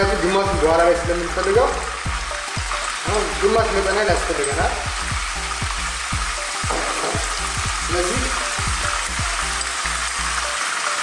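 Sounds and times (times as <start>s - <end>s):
chicken sizzling in hot oil: 0.0s - 11.0s.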